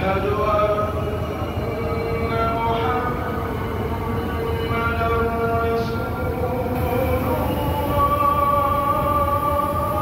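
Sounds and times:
man singing call to prayer: 0.0 - 10.0.

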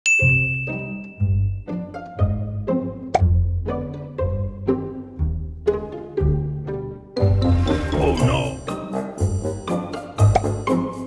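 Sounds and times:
bright ding: 0.1 - 1.7.

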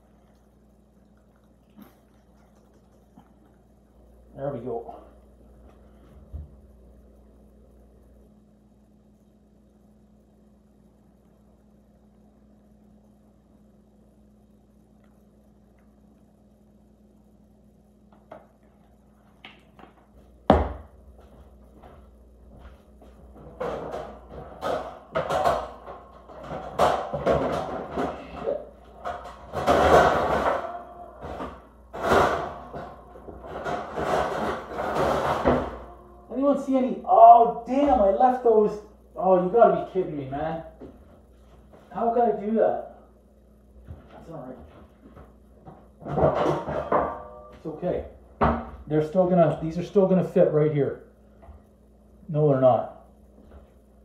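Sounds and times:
metal baking pans clanking: 23.4 - 36.1, 46.0 - 47.7.

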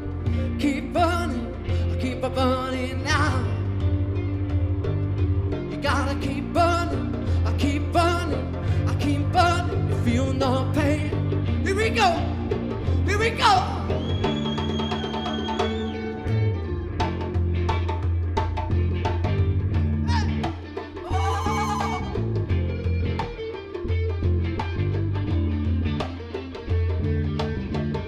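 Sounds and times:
bass guitar: 0.0 - 28.0
electric guitar: 0.0 - 28.0.

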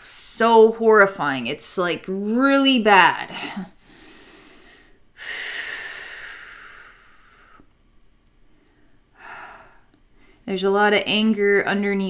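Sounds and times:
woman breathing deeply: 3.3 - 7.7, 8.4 - 10.4.

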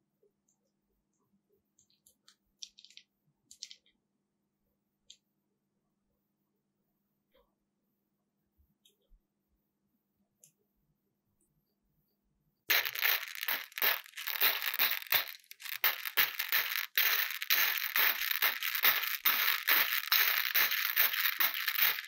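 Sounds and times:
hard candies clattering in a dish: 2.6 - 3.9, 12.7 - 22.0.

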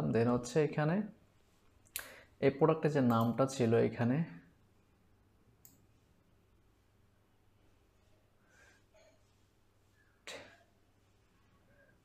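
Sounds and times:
person speaking: 2.0 - 4.6
computer mouse click: 5.6 - 5.8.

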